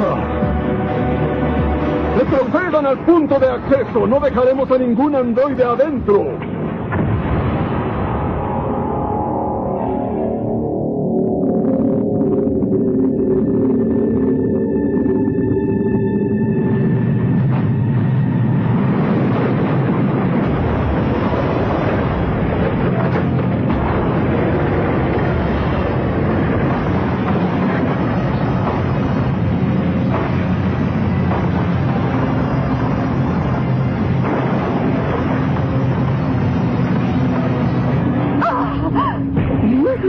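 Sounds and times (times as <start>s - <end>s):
rumble of sound effects: 0.0s - 40.0s
cartoon soundtrack music: 8.7s - 17.9s.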